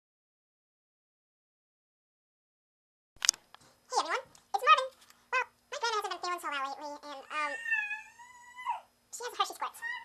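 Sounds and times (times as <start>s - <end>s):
high-pitched vocal calls: 7.1s - 8.9s.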